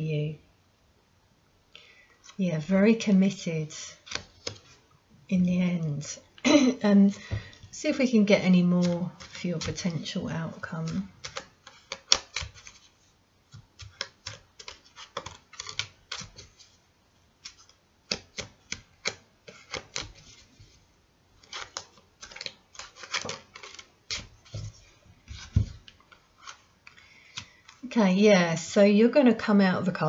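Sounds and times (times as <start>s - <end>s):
cards being shuffled: 4.0s - 4.8s, 8.6s - 16.8s, 17.4s - 20.8s, 21.4s - 27.9s.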